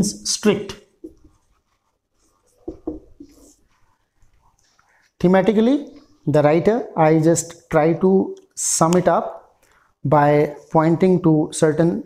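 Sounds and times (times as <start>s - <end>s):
marker writing on whiteboard: 0.7s - 6.3s
soft knocks: 2.6s - 3.3s.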